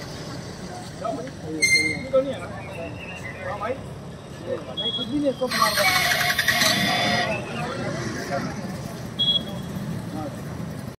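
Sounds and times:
vehicles passing: 0:00.0 - 0:11.0
faint voices: 0:00.3 - 0:11.0.

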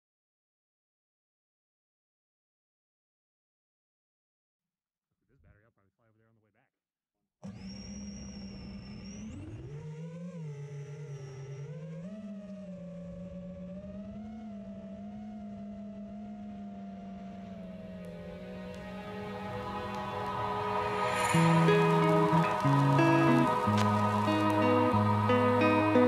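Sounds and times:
drone motors whining: 0:07.4 - 0:26.0.

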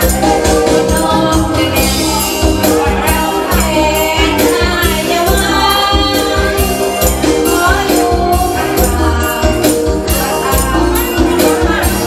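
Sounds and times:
amplified band music: 0:00.0 - 0:12.0
woman singing into a microphone: 0:00.1 - 0:12.0.

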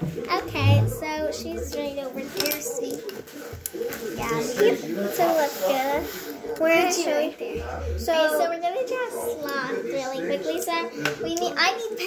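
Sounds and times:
markers and pencils clattering: 0:00.0 - 0:07.2.

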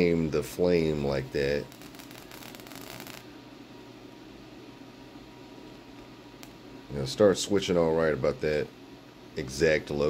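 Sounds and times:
plasma flame hissing: 0:01.3 - 0:03.2
electric crackle: 0:01.4 - 0:03.3.

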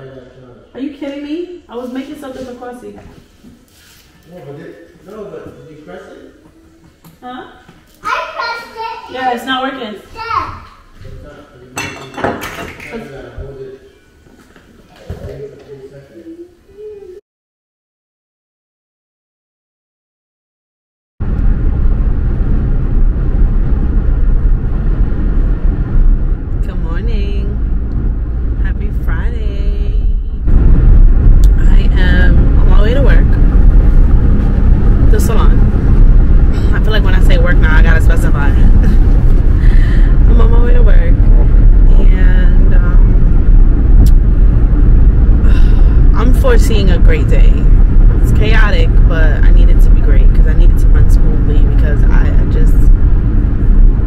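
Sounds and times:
woman talking: 0:00.8 - 0:03.2, 0:07.2 - 0:07.7, 0:09.1 - 0:10.1, 0:26.6 - 0:27.6, 0:28.6 - 0:30.4, 0:31.4 - 0:33.4, 0:35.0 - 0:35.8, 0:36.6 - 0:43.3, 0:45.4 - 0:52.9
car road and engine rumble: 0:21.2 - 0:54.0.

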